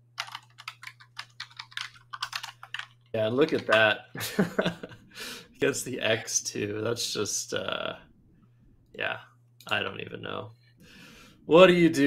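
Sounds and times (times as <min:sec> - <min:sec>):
typing on computer keyboard: 0:00.2 - 0:03.8.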